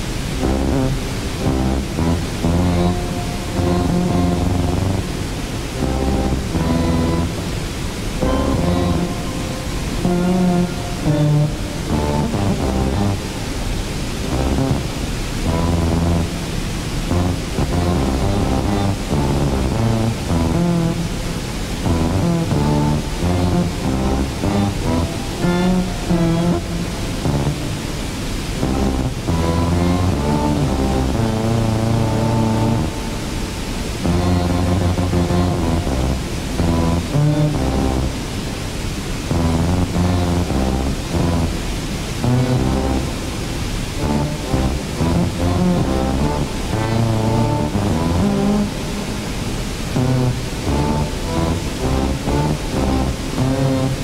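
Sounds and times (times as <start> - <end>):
synthesizer music: 0.0 - 27.8, 28.5 - 38.3, 39.6 - 49.2
waterfall rushing: 0.0 - 54.0.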